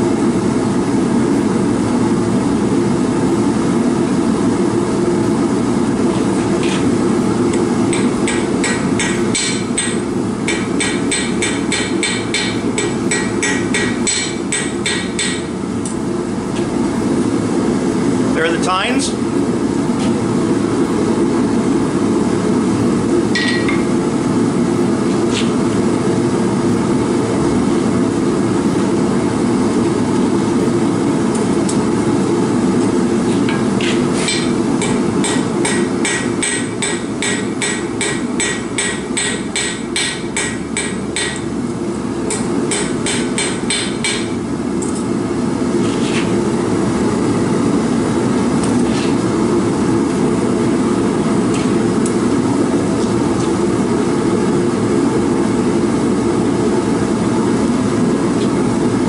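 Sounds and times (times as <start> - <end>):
gas forge burner roaring: 0.0 - 59.0
hammer striking metal on anvil: 7.9 - 15.5, 23.3 - 23.9, 33.8 - 41.5, 42.3 - 44.4.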